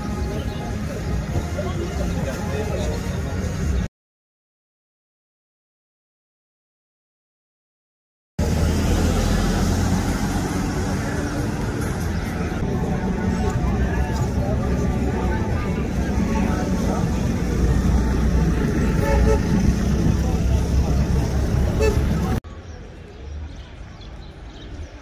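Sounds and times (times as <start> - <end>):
motor traffic: 0.0 - 3.9, 8.4 - 25.0
people's voices: 0.0 - 3.9, 10.3 - 25.0.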